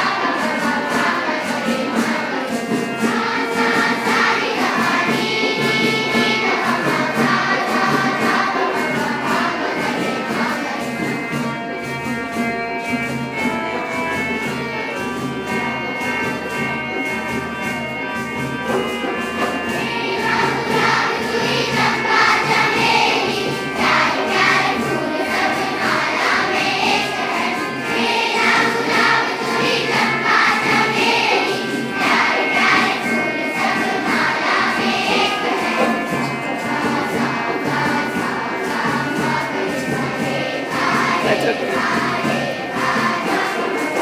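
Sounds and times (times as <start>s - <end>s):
children singing together: 0.0s - 12.4s, 13.0s - 44.0s.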